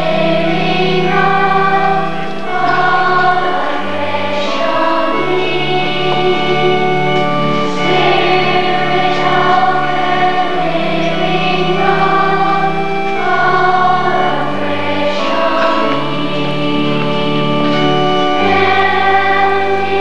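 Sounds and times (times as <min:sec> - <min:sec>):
choir singing a hymn: 0:00.0 - 0:20.0
sustained low notes: 0:00.0 - 0:20.0.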